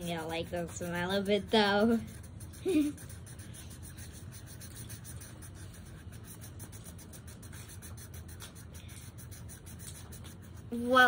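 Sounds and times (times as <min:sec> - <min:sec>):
marker scratching on paper: 0:00.0 - 0:11.0.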